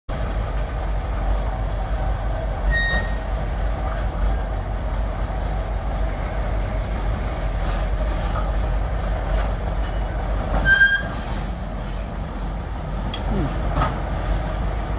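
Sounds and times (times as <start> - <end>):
engine low rumble: 0.1 - 14.9.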